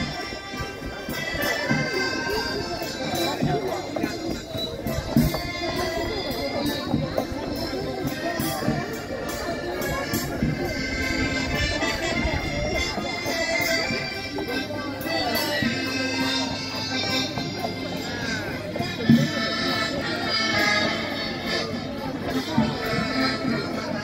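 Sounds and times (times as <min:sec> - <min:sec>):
accordion folk dance music: 0:00.0 - 0:24.0
people talking: 0:00.0 - 0:24.0.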